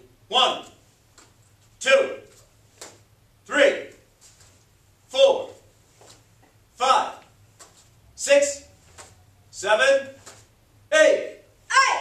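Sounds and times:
people shouting: 11.7 - 12.0.

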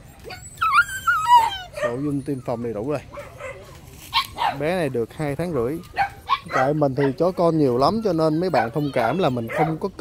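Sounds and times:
puppy whining: 0.0 - 4.8, 5.4 - 10.0.

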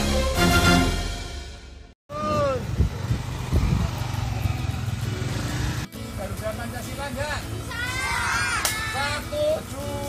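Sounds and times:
wind noise: 2.1 - 4.3
motorcycle engine running: 2.1 - 7.8
children calling out: 7.6 - 9.2.

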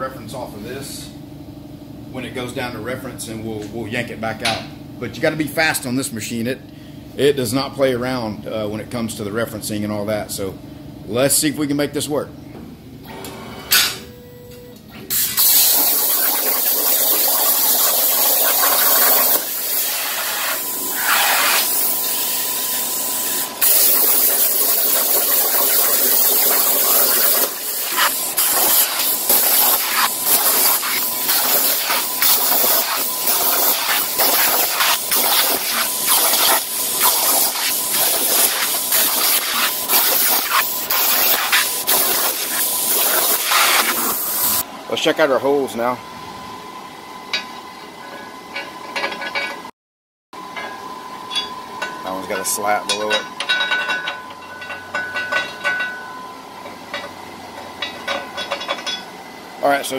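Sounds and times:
plasma torch hissing: 15.1 - 44.6.

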